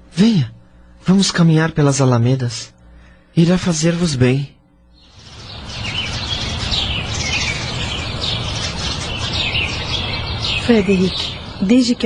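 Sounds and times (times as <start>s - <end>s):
birds chirping: 2.9s - 12.0s.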